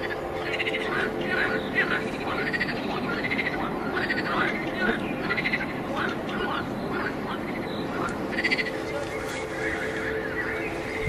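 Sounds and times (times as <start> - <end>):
frogs calling in chorus: 0.0 - 10.8
loud pulsed frog call: 6.4 - 8.8.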